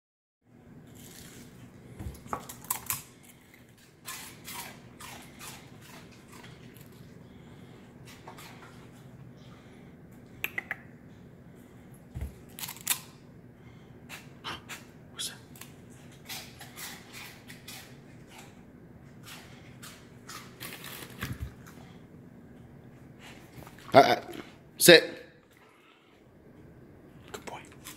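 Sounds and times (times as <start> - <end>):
faint steady hum: 0.5 - 27.9
dog crunching and chewing: 0.8 - 9.2, 12.3 - 13.2, 14.1 - 22.1, 27.2 - 27.9.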